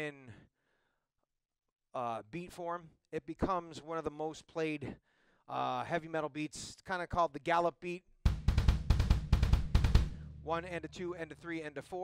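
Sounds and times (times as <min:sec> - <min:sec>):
double bass drum gallop beat: 0:08.3 - 0:11.2
snare and cymbals: 0:08.3 - 0:11.5.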